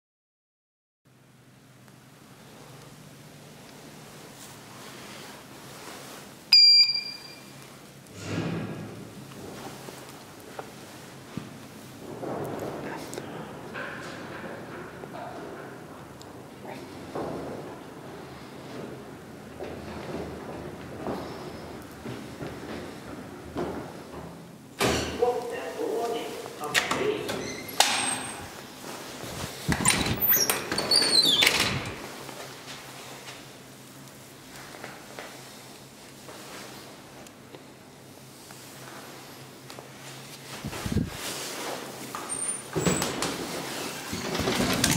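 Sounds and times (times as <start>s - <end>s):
elevator call button beep: 6.5s - 7.5s
elevator doors knocking and clattering: 11.3s - 25.4s, 42.7s - 44.9s.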